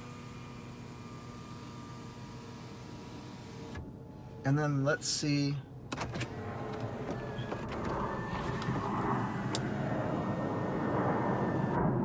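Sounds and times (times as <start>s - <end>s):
electric motor whirring: 6.1s - 11.8s.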